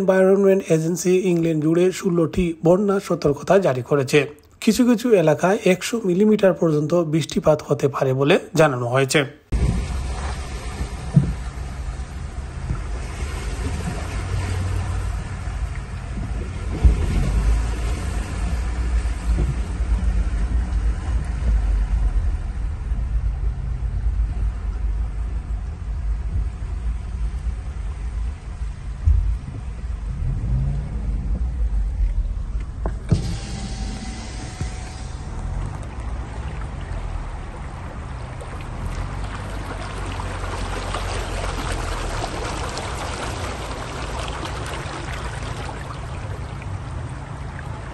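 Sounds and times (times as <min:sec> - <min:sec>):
car cabin rumble: 0:09.5 - 0:42.9
dull thumps: 0:10.8 - 0:11.6
bright even hiss: 0:33.1 - 0:35.6.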